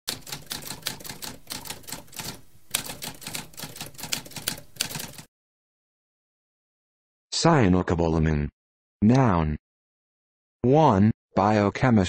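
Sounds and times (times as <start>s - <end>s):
typewriter keystrokes clacking: 0.1s - 5.3s.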